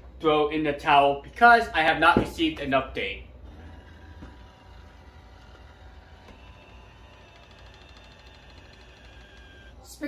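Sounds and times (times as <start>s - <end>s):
robot vacuum humming: 3.4s - 10.0s.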